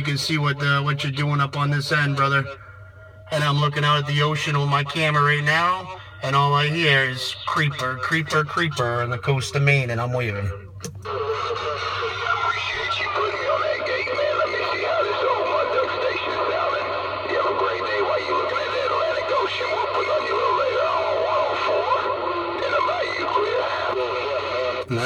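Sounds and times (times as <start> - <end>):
echoing voice over radio: 0.0 - 25.0
radio hum and static: 0.0 - 25.0.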